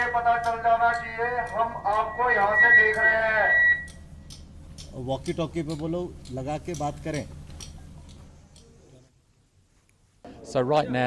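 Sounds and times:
steady high-pitched tone: 0:00.0 - 0:04.2.

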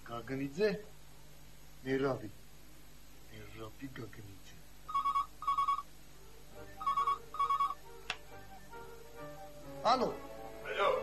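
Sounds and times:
telephone electronic double ring: 0:04.9 - 0:05.8, 0:06.8 - 0:07.8.

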